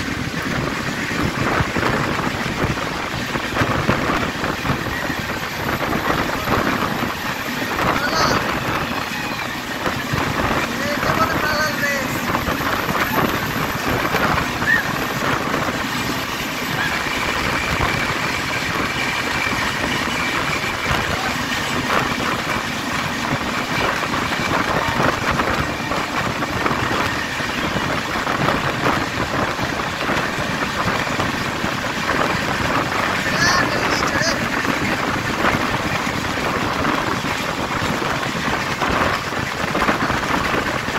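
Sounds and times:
passing express train: 0.0s - 40.9s
rushing wind: 0.0s - 40.9s
train wheels on rails: 0.0s - 40.9s.

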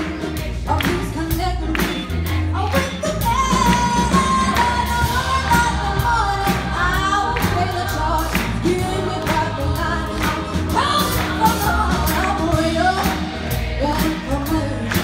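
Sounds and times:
live band playing upbeat song: 0.0s - 15.0s.

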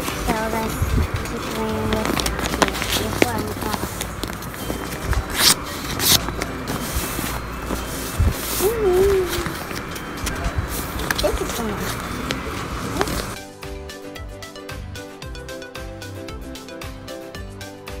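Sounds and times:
paper crackling: 0.0s - 13.4s
held musical notes: 0.0s - 17.6s
indistinct background voices: 0.2s - 13.4s.

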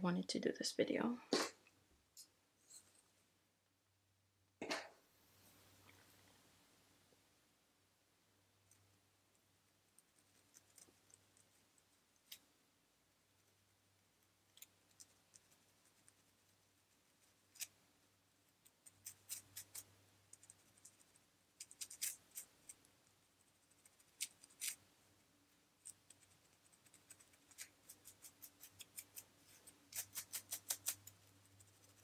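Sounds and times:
faint low hum: 0.0s - 32.0s
scalp scratching through hair: 21.6s - 22.8s, 26.1s - 32.0s.

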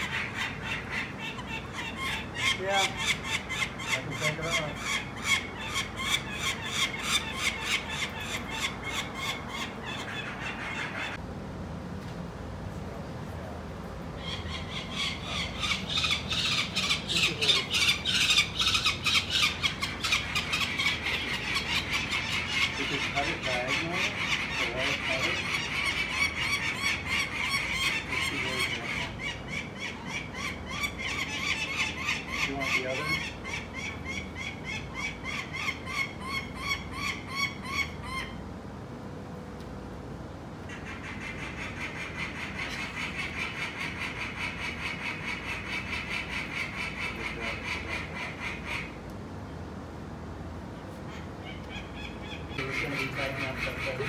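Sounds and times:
falcon alarm call: 51.4s - 54.0s.

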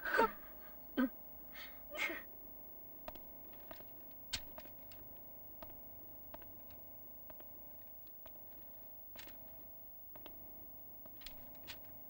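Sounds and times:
person gasping and sighing: 1.6s - 2.2s.

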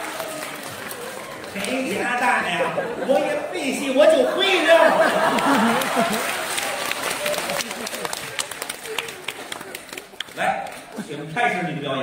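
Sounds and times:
audience clapping: 0.0s - 3.4s, 4.4s - 11.0s
man speaking: 1.6s - 5.2s, 10.3s - 12.0s.

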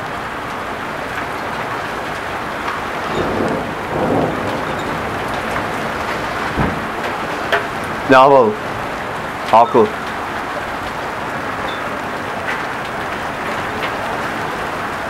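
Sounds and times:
heavy rain pouring: 0.0s - 15.0s.

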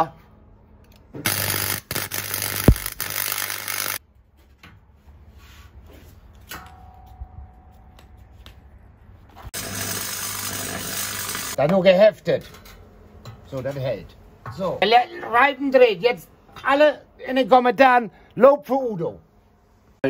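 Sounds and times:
welder low hum: 1.2s - 4.0s, 9.6s - 11.6s
welding arc hissing: 1.2s - 4.0s, 9.6s - 11.6s.

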